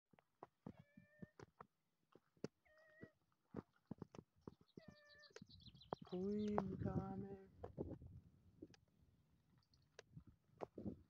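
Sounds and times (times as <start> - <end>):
cat meowing faintly: 0.7 - 1.4, 2.6 - 3.2.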